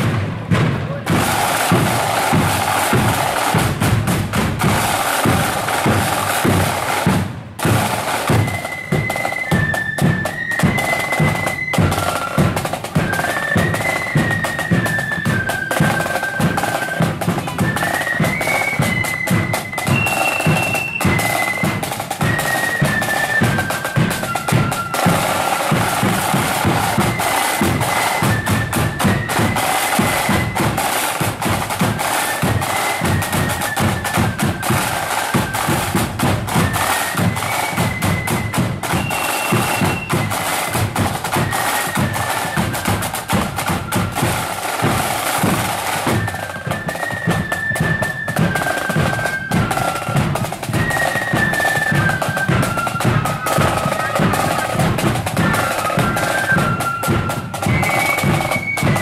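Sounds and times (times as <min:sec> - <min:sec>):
side drums and bass drum: 0:00.0 - 0:59.0
flute melody: 0:00.8 - 0:59.0.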